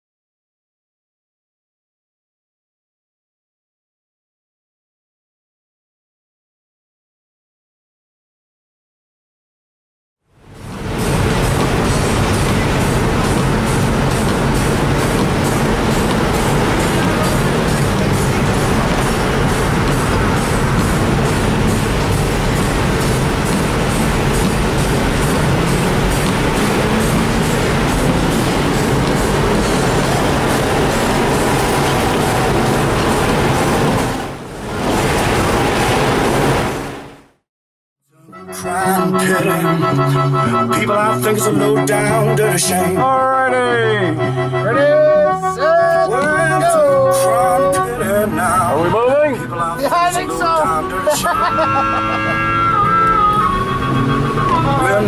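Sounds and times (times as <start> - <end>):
race car engine at high revs: 10.6 - 37.2.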